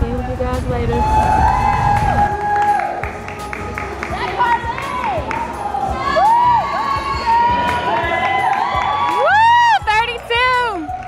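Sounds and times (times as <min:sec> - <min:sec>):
audience whooping and cheering: 0:00.9 - 0:03.3, 0:04.1 - 0:11.0.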